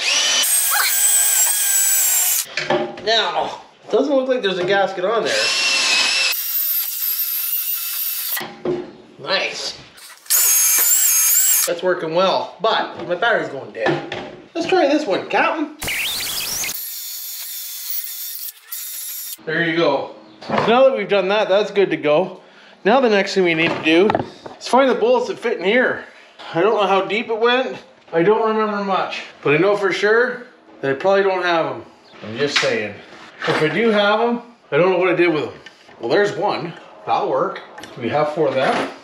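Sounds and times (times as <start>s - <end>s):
drill wire brush scrubbing metal: 0.0s - 2.5s, 5.4s - 8.4s, 15.8s - 19.4s.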